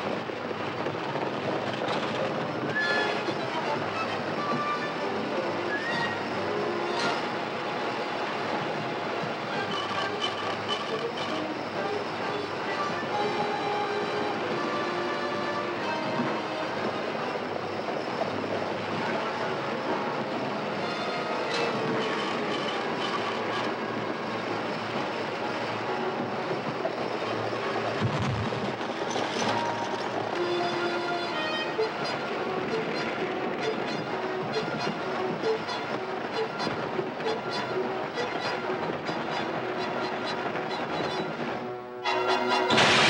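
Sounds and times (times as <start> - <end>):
horses galloping: 0.0 - 7.7, 8.3 - 41.6
wagon wheels rumbling and rattling: 0.0 - 41.9, 42.5 - 43.0
film score music: 0.0 - 43.0.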